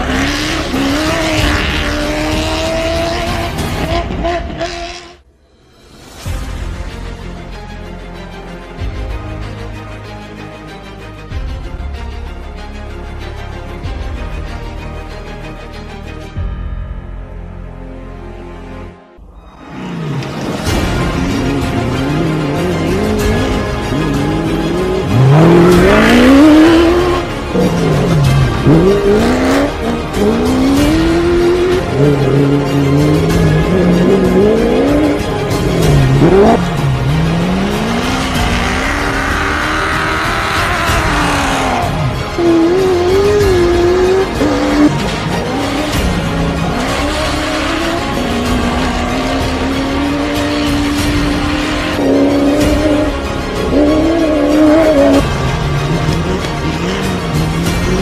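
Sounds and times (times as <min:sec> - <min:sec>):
truck engine revving: 0:00.0 - 0:05.3, 0:19.6 - 0:58.0
music: 0:00.0 - 0:58.0.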